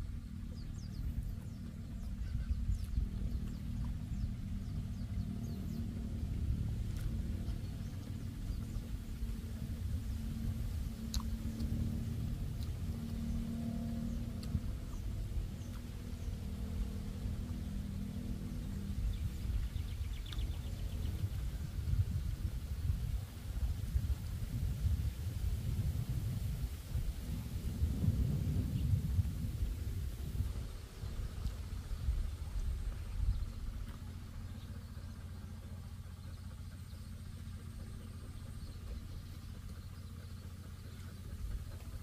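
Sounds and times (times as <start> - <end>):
faint low hum: 0.0 - 42.0
wind buffeting microphone: 0.0 - 42.0.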